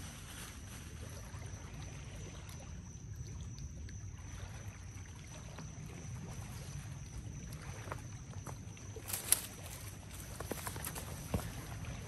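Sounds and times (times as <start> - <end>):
low rumble of wind: 0.0 - 12.0
water lapping at river edge: 0.0 - 12.0.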